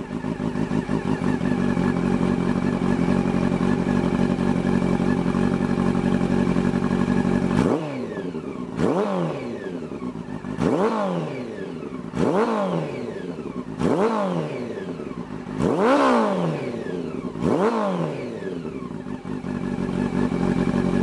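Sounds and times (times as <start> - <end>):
motorcycle engine revving: 0.0 - 21.0.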